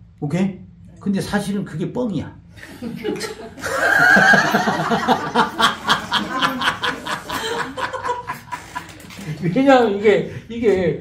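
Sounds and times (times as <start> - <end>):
man laughing: 2.8 - 9.2.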